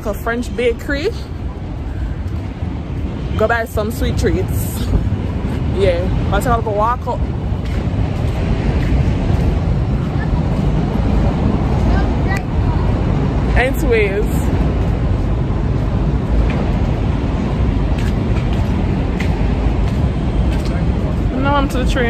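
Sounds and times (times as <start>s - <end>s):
city traffic rumble: 0.0s - 22.0s.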